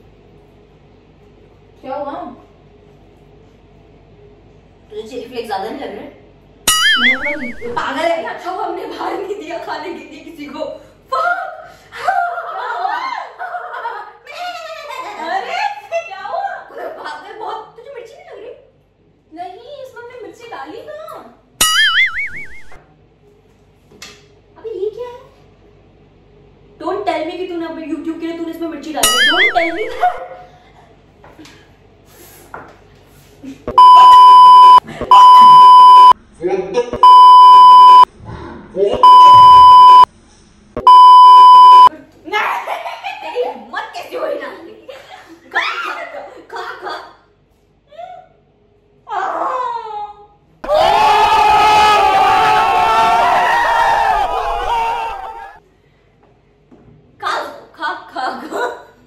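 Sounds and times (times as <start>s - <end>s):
high warbling tone: 6.7s - 7.8s, 21.6s - 22.8s, 29.0s - 30.2s
crowd of young men shouting: 50.6s - 55.6s.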